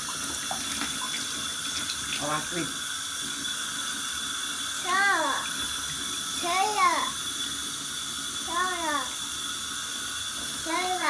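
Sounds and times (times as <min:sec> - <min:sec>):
tap water running into tub: 0:00.0 - 0:11.0.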